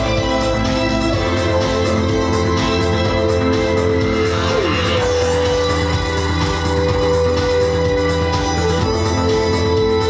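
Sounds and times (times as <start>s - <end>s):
held synth chords: 0.0s - 10.0s
pulsing bass: 0.0s - 10.0s
falling synth pitch glide: 3.4s - 6.7s.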